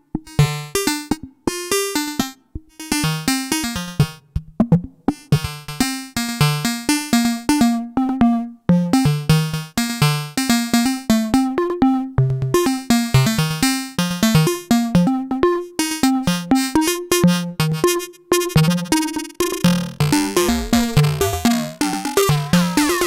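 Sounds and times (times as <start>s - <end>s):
synthesizer repeating sequence: 20.0s - 23.0s.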